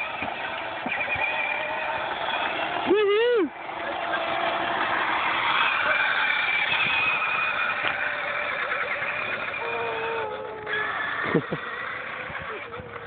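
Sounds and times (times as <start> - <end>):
electric motor and gearbox whine: 0.0 - 13.0
plastic wheels rolling on concrete: 0.0 - 13.0.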